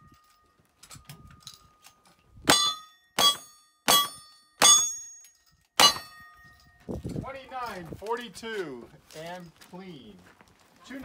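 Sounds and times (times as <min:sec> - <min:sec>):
steel plate ringing: 0:02.5 - 0:06.8.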